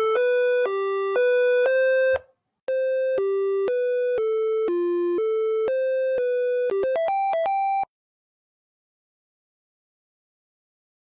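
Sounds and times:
electronic beeping melody: 0.0s - 7.9s.

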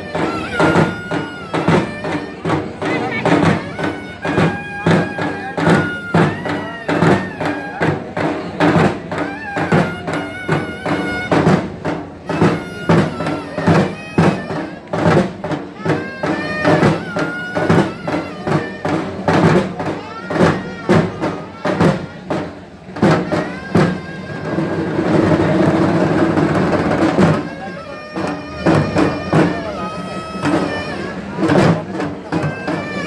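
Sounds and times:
high held melody: 0.0s - 19.6s
drums beating steady rhythm: 0.0s - 33.0s.

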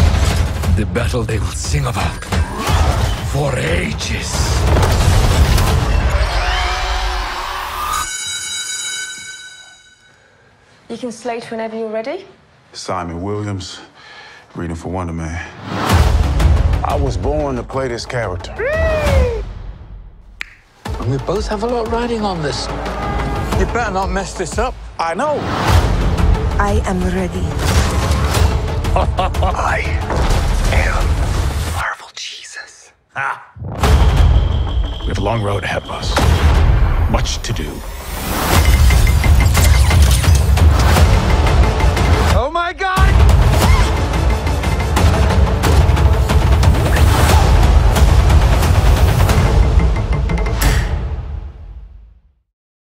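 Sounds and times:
deep rumbling score and battle effects: 0.0s - 7.5s, 33.6s - 52.1s
high ringing chord: 7.9s - 10.5s.

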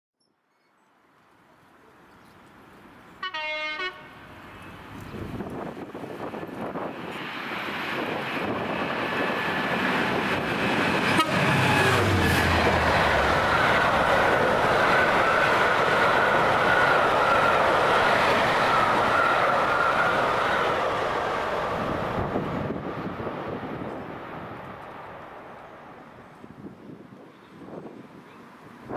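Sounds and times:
diesel locomotive passing: 1.4s - 28.9s
locomotive horn blast: 3.2s - 4.2s, 11.0s - 12.8s.

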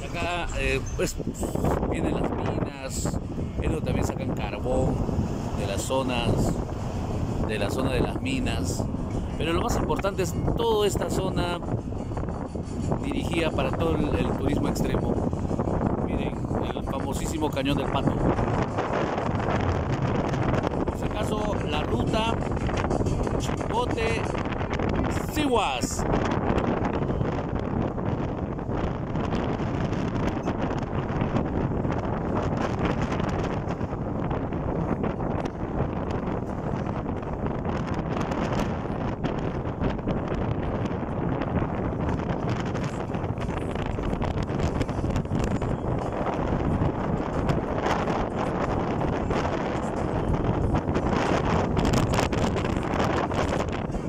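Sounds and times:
road and engine rumble: 0.0s - 54.0s
wind rushing over microphone: 0.0s - 54.0s.

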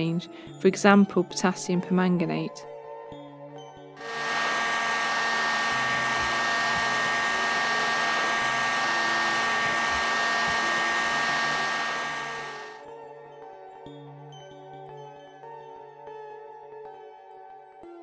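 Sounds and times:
heat gun fan whining: 4.0s - 12.8s.

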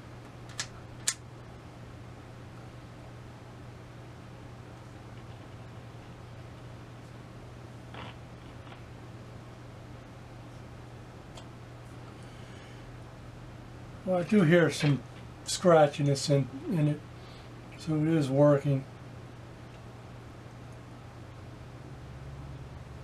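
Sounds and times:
radio static hiss and hum: 4.1s - 9.6s, 14.0s - 18.9s.

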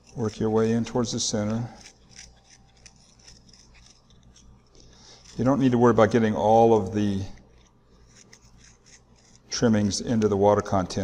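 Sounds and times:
knife scraping soil: 0.0s - 10.4s.

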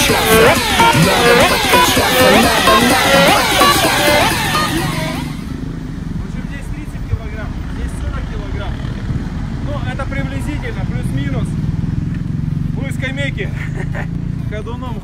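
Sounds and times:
vehicle engine rumbling: 0.0s - 15.0s.

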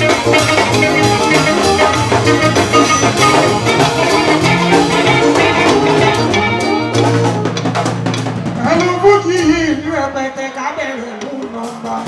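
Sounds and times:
bass guitar line: 0.0s - 10.5s
drum kit and percussion: 0.0s - 12.0s
live band playing: 0.0s - 12.0s.

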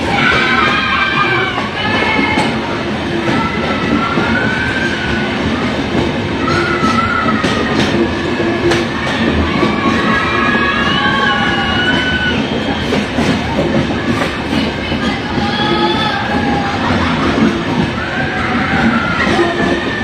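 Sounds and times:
train rumbling on rails: 0.0s - 20.0s
wheels clacking: 0.0s - 20.0s.

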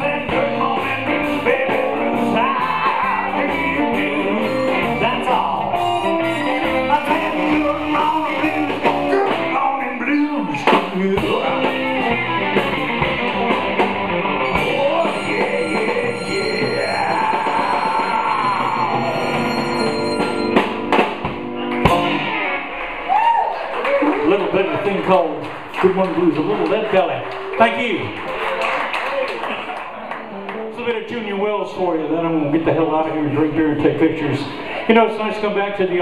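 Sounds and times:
electric blues band playing: 0.0s - 27.8s, 29.9s - 32.9s
harmonica: 3.7s - 9.5s, 14.4s - 21.0s.

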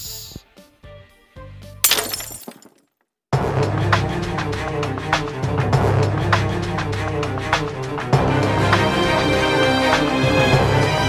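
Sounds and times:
glass shattering: 1.8s - 2.9s
music with strong bass: 3.4s - 11.0s.

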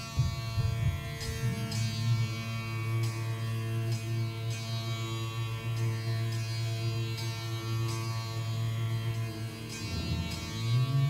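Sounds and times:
resonant low drone: 0.0s - 11.0s
plucked string notes: 5.7s - 11.0s.

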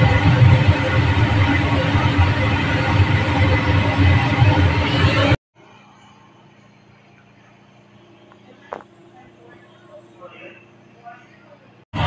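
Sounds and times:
faint kitchen hum: 5.6s - 11.9s.

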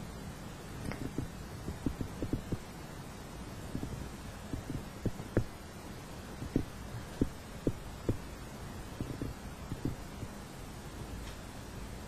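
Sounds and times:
quiet steady hum: 0.0s - 12.0s
soft low thumps: 0.8s - 2.7s, 3.6s - 5.6s, 6.4s - 8.3s, 9.0s - 10.4s.

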